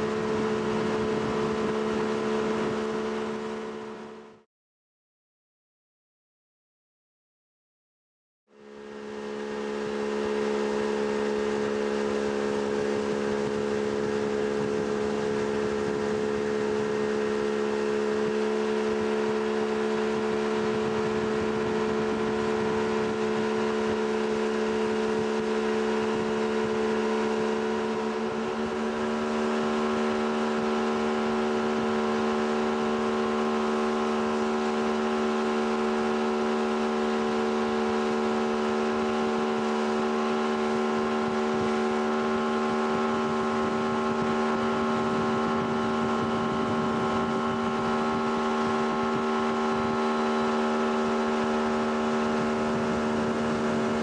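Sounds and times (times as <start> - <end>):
motorboat engine running: 0.0 - 4.4, 8.5 - 54.0.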